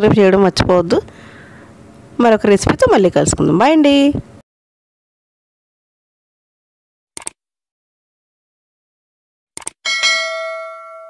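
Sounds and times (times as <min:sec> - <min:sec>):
notification bell ringing: 0:09.9 - 0:11.0.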